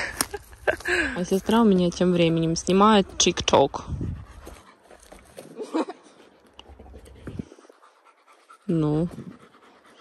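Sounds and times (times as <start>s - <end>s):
dog panting: 1.5s - 10.0s.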